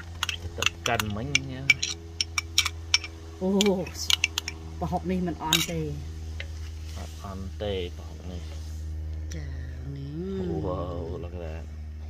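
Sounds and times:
metal spoon scraping glass jar: 0:00.0 - 0:04.6, 0:05.4 - 0:05.8.

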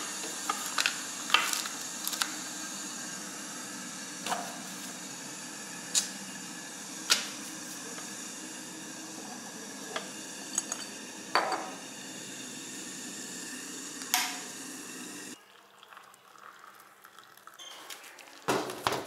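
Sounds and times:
jars clinking on a counter: 0:09.9 - 0:11.8.

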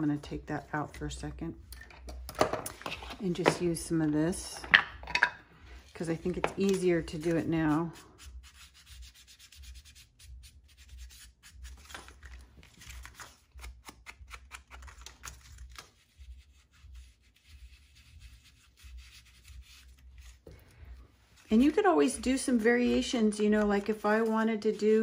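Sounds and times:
foam tool scrubbing paper: 0:16.0 - 0:25.0.

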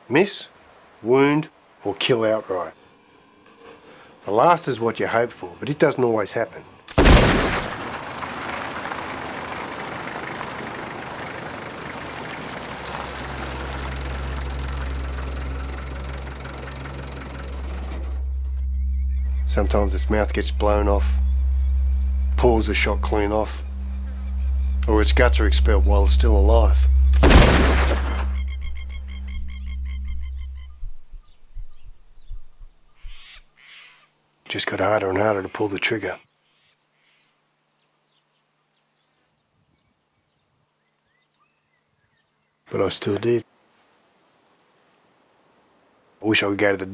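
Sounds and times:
low steady hum: 0:02.6 - 0:33.0
low steady drone: 0:07.2 - 0:31.6
truck engine and tyre noise: 0:07.6 - 0:30.2
faint bird calls: 0:09.5 - 0:34.2, 0:35.1 - 0:42.7
high chirping notes: 0:10.1 - 0:32.0
soft low thumps: 0:14.4 - 0:32.8.

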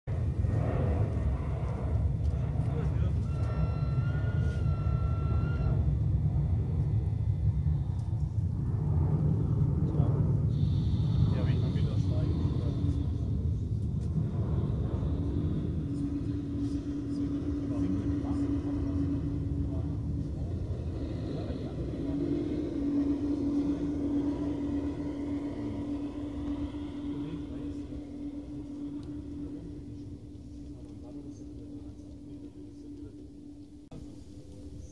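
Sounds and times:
steady hum: 0:00.0 - 0:34.9
train horn signal: 0:03.1 - 0:05.9
model train wheels rumbling: 0:06.4 - 0:34.9.

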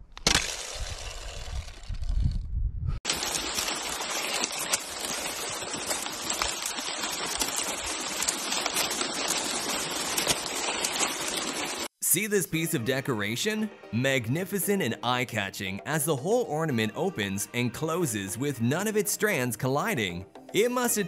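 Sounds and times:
ice pieces crackling and tinkling: 0:03.1 - 0:11.9.

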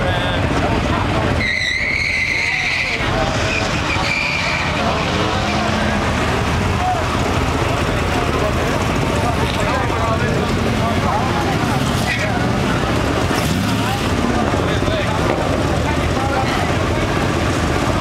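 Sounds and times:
tires squealing: 0:00.0 - 0:07.4, 0:10.2 - 0:18.0
cars accelerating: 0:00.0 - 0:18.0.

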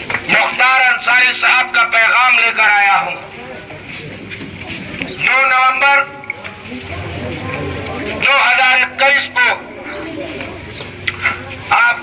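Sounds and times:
crowd noise: 0:00.0 - 0:12.0
man speaking through megaphone: 0:00.2 - 0:04.0, 0:05.1 - 0:10.2, 0:11.2 - 0:12.0.

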